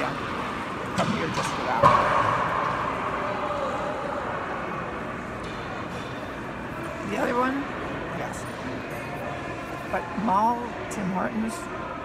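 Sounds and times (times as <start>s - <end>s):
shopping mall background din: 0.0s - 12.0s.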